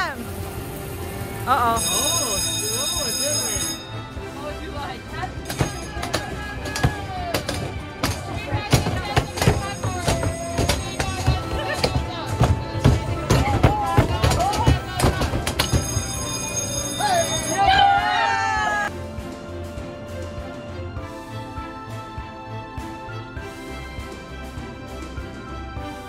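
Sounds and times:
arcade game music: 0.0 - 26.0
voices: 1.4 - 18.9
mallets thudding on arcade machines: 5.5 - 16.9.

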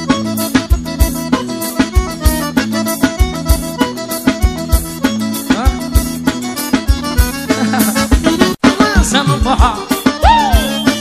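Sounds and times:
accordion melody: 0.0 - 11.0
steady drum beat: 0.0 - 11.0.

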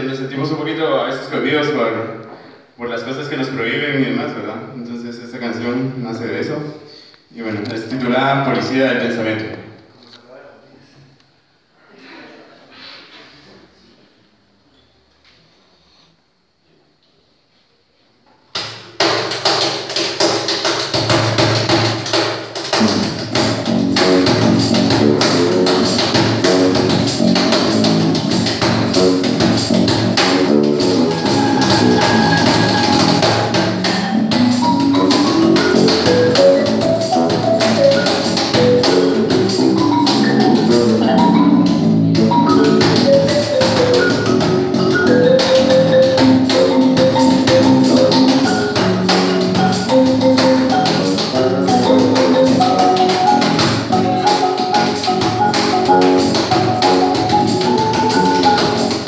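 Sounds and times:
cajon beat: 18.5 - 59.0
bass guitar: 22.8 - 59.0
marimba mallet runs: 30.8 - 59.0.

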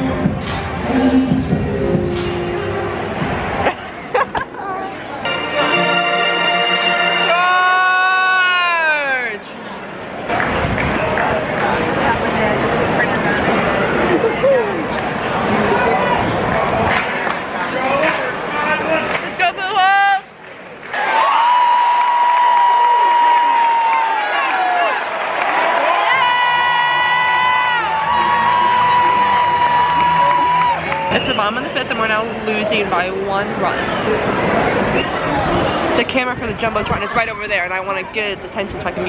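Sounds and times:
stadium crowd chatter: 0.0 - 21.3, 22.3 - 39.0.

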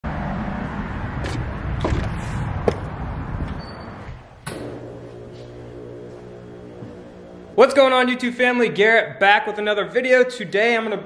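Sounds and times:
wind rumbling on microphone: 0.1 - 4.5.

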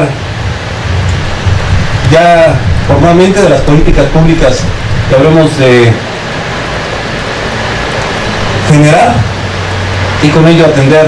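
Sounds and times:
low hum: 0.0 - 10.5
even hiss: 0.0 - 11.0.

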